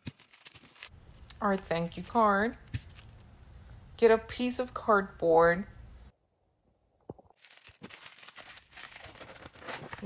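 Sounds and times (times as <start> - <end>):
cardboard rustling and scraping: 7.4 - 10.0.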